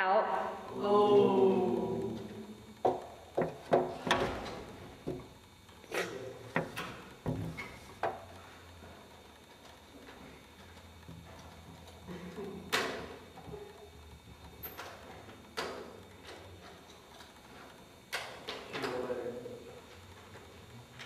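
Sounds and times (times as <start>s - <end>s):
sharp knocks and clicks: 2.8s - 5.3s.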